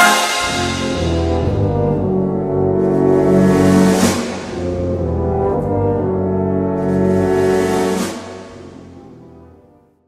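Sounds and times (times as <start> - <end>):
bright cymbal crash: 0.0 - 1.5
concert band brass chords: 0.0 - 9.8.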